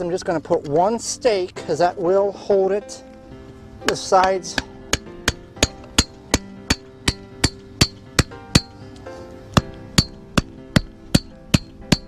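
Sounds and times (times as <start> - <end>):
hammer driving wooden stake: 3.8 - 8.8, 9.5 - 12.0.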